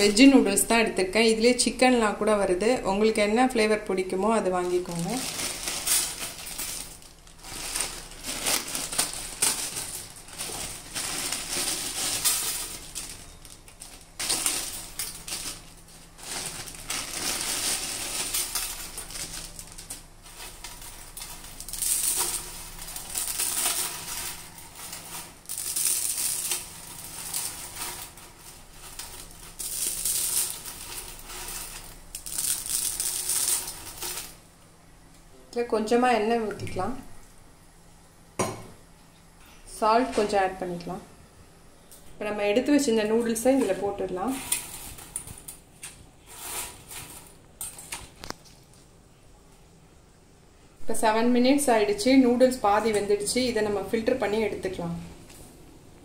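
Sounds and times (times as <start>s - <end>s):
plastic packets crinkling: 4.6s - 34.4s
dry noodles rustling on steel tray: 4.7s - 34.4s, 43.4s - 45.5s, 46.2s - 48.4s.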